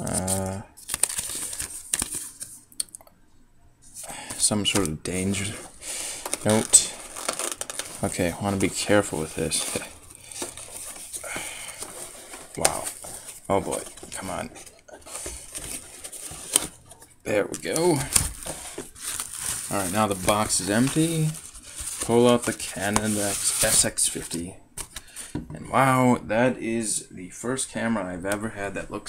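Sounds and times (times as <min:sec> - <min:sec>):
paper rustling and sliding: 0:00.0 - 0:02.6, 0:03.8 - 0:25.4.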